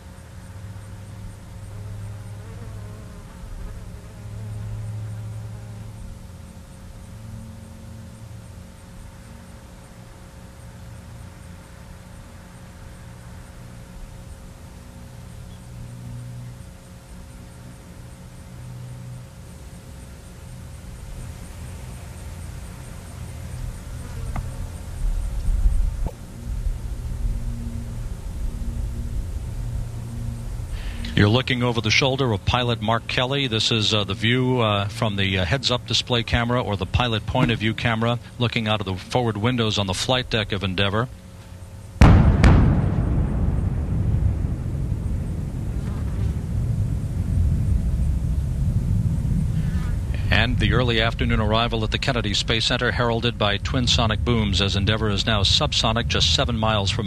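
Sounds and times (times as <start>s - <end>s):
low buzzing hum: 0.0s - 57.0s
faint wavering tones: 24.5s - 38.2s
deep rumble: 24.6s - 40.6s, 41.9s - 57.0s
sonic boom cracks: 42.0s - 57.0s.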